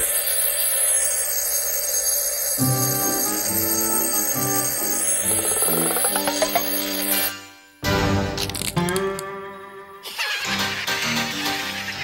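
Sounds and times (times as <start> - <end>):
alarm clock ringing: 0.0 - 7.4
cartoon background music: 2.6 - 12.0.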